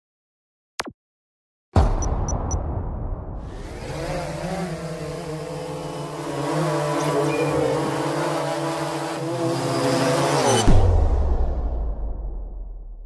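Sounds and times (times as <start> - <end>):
drone propellers whirring: 3.4 - 11.0.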